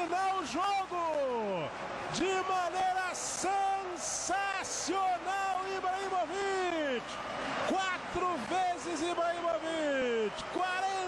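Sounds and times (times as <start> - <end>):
man commentating: 0.0 - 11.0.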